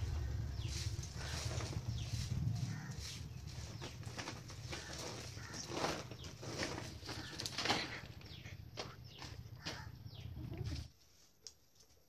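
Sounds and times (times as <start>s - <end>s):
low rumble: 0.0s - 5.5s.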